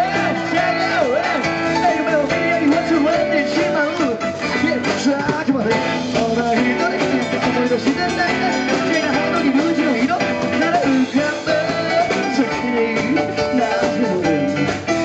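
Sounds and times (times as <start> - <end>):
drum kit beat: 0.0 - 15.0
electric guitars: 0.0 - 15.0
live rock band playing: 0.0 - 15.0.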